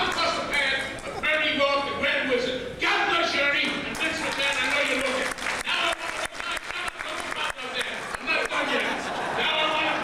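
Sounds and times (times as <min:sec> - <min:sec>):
voices: 0:00.0 - 0:10.0
sharp claps: 0:03.9 - 0:08.7
audience applauding: 0:03.9 - 0:10.0.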